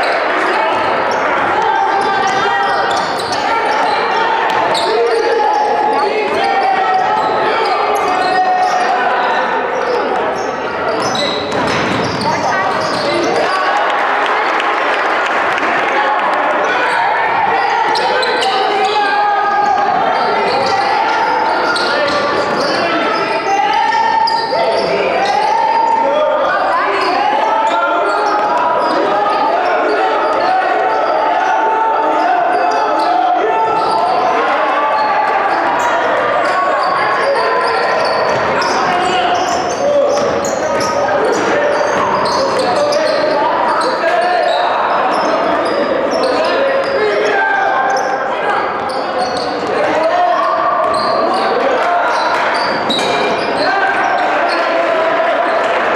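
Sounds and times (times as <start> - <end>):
many voices talking: 0.0 - 55.9.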